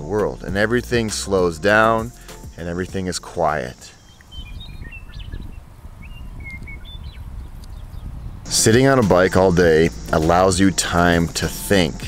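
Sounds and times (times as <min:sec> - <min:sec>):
birds whistling: 0:03.5 - 0:09.0
wind rumble on microphone: 0:04.2 - 0:11.0.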